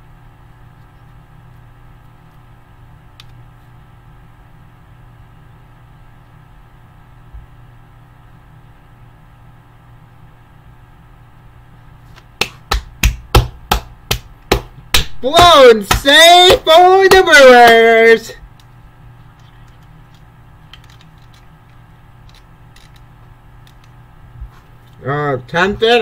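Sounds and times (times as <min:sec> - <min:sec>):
low steady hum: 0:00.0 - 0:26.0
sharp hand strikes: 0:12.4 - 0:17.9.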